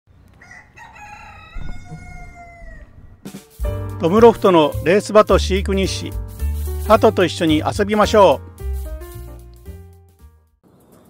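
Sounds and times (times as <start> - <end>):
rooster crowing: 0.4 - 3.3
low thump: 1.6 - 2.2.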